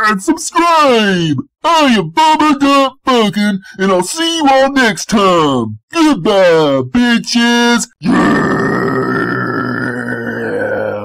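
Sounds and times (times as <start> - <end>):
man's rasping guttural vocal sound: 7.9 - 11.0.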